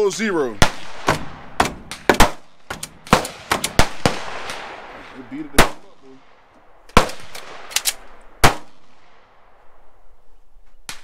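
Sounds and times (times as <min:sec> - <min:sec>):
loud sharp bangs: 0:00.5 - 0:09.5.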